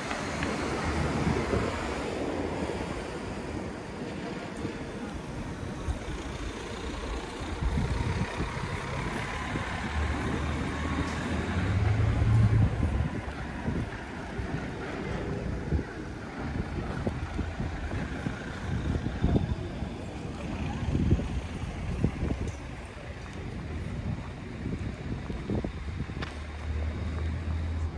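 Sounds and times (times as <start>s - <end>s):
truck engine passing: 6.2s - 13.2s.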